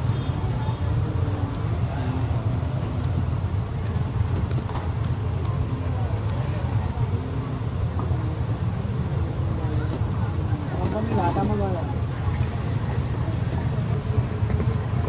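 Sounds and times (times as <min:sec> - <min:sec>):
indistinct voices of passers-by: 0:00.0 - 0:15.0
traffic rumble: 0:00.0 - 0:15.0.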